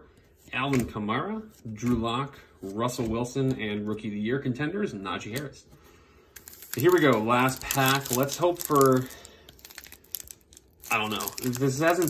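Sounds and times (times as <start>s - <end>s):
foil pack crinkling: 6.3s - 12.0s.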